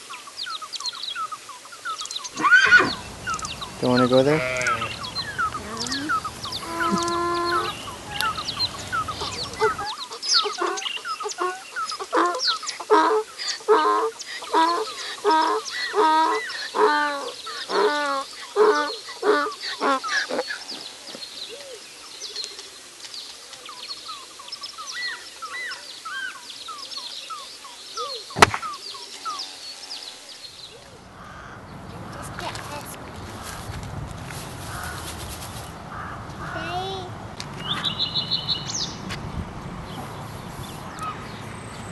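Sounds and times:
loud poultry calls: 0:02.4 - 0:20.8
low outdoor rumble: 0:02.8 - 0:09.8
light ticks: 0:03.3 - 0:03.6.

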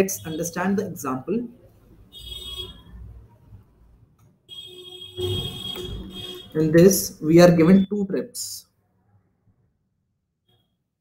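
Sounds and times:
high-pitched electronic whine: 0:05.2 - 0:06.6.

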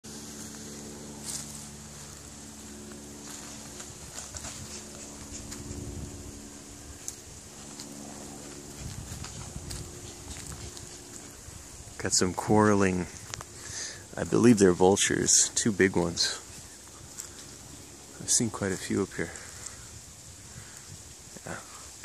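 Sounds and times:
footsteps on trail: 0:00.0 - 0:21.0
steady low drone: 0:00.0 - 0:22.0
twigs and brush clicking: 0:00.2 - 0:06.2, 0:06.8 - 0:11.6, 0:12.4 - 0:14.6, 0:15.8 - 0:19.8.

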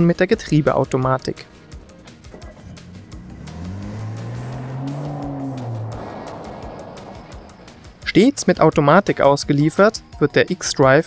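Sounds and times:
background music: 0:00.0 - 0:11.0
car engine pulling away: 0:01.4 - 0:08.9.

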